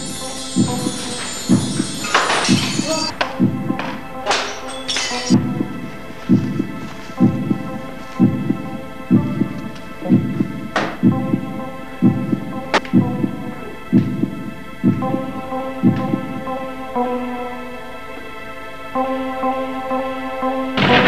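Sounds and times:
droning chord: 0.0s - 10.5s
slow low thumps: 5.4s - 16.4s.

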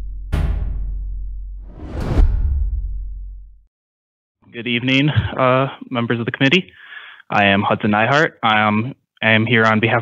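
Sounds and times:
deep boom hits: 0.0s - 3.6s
rising whoosh: 1.6s - 3.2s.

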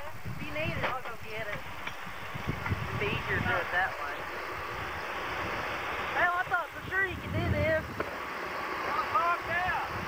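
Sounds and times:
steady noisy background: 0.0s - 10.0s.

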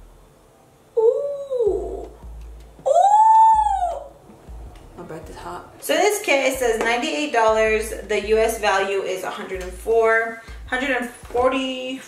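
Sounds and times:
woman's drawn-out oooh: 1.0s - 2.2s, 2.8s - 4.1s.

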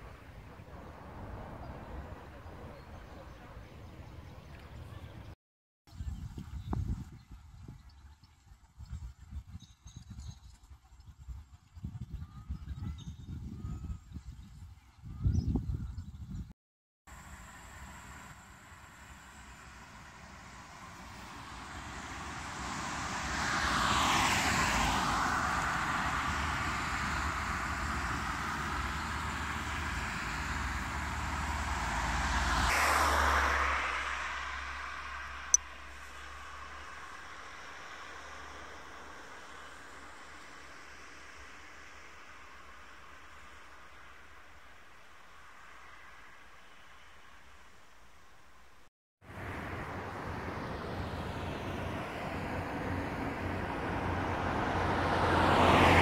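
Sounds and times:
vehicles driving past: 0.0s - 5.4s, 17.1s - 56.0s.

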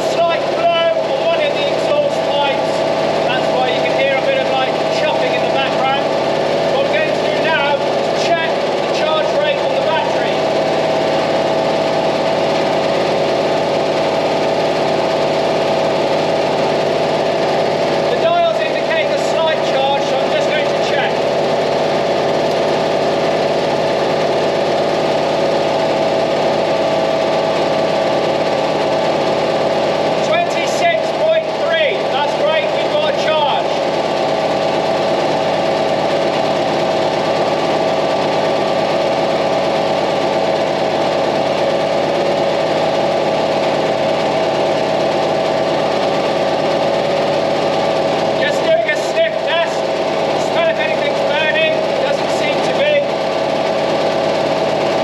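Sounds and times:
engine idling: 0.0s - 55.0s.

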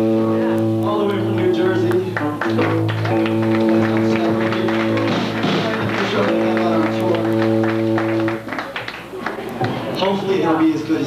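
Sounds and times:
loud electric guitars playing live: 0.0s - 10.0s.

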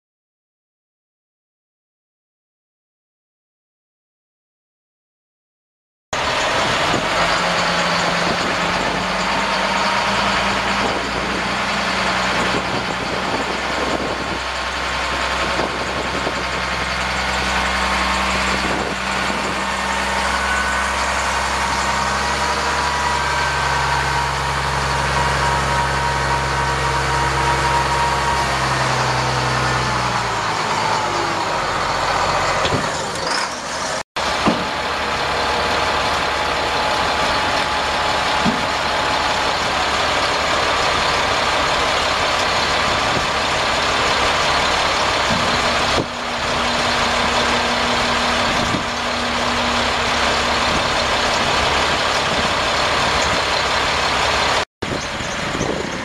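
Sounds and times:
diesel truck engine running: 6.2s - 56.0s.

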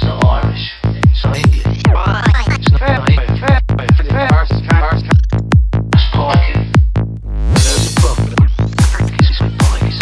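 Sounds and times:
electronic trance music: 1.1s - 6.6s, 7.5s - 10.0s
bubbly warbling synth lines: 1.4s - 2.8s.

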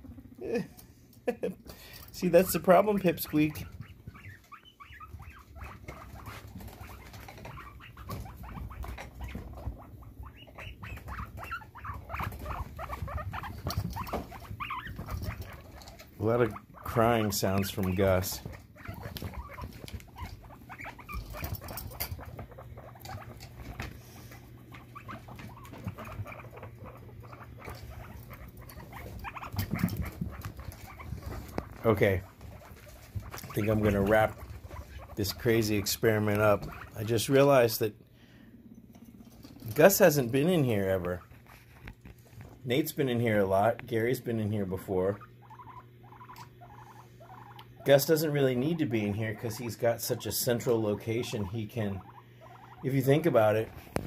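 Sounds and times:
guinea pigs scurrying: 0.0s - 54.0s.

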